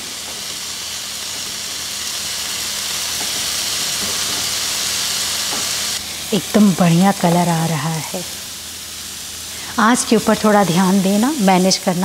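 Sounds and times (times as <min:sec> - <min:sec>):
paneer sizzling in pan: 0:00.0 - 0:12.0.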